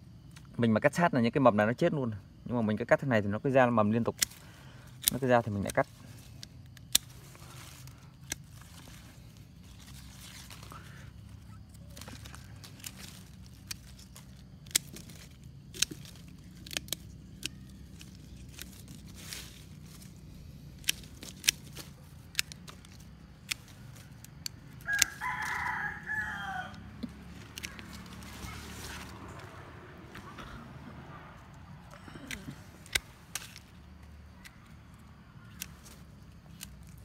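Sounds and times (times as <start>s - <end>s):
steady low hum: 3.6s - 25.2s
pruning shears snipping: 4.0s - 30.6s, 31.4s - 37.0s
rooster crowing: 24.8s - 27.8s.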